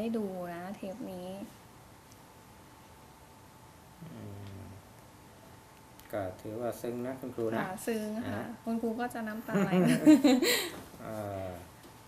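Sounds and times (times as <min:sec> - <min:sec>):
man's low murmur: 0:04.0 - 0:04.9, 0:11.0 - 0:11.7.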